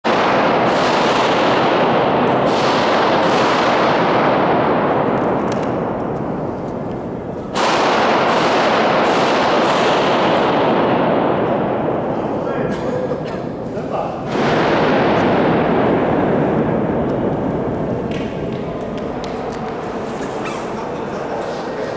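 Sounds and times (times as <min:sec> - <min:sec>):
pistol shots echoing: 0:00.1 - 0:13.6, 0:14.2 - 0:21.4.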